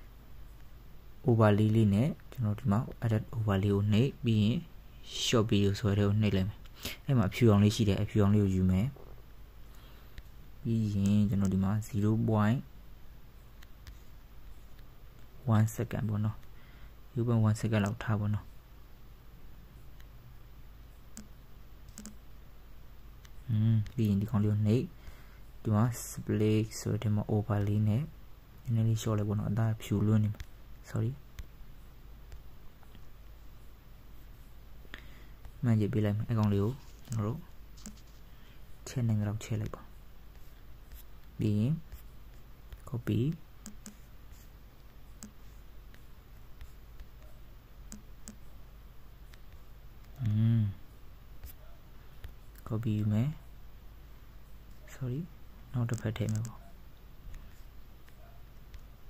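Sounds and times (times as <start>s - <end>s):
low steady hum: 0.0s - 59.0s
faint sharp clicks: 55.8s - 58.9s.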